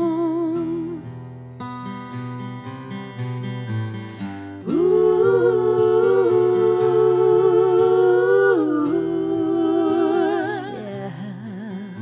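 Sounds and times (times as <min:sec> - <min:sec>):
acoustic guitar: 0:00.0 - 0:12.0
woman singing a long note: 0:04.7 - 0:12.0.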